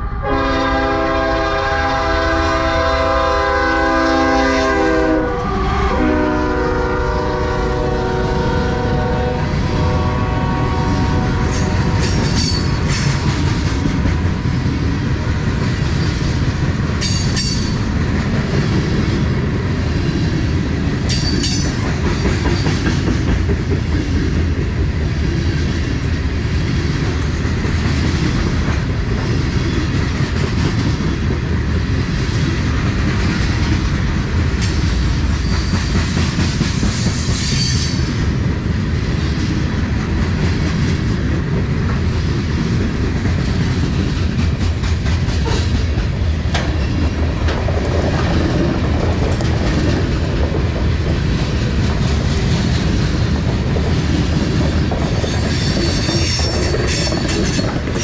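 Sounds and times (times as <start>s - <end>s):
freight train wheels rumbling: 0.0s - 58.0s
high wheel squeals: 55.2s - 57.7s.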